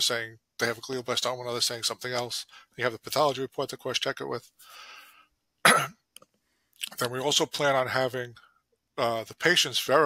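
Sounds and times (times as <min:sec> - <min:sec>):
man coughing: 0:05.6 - 0:06.0.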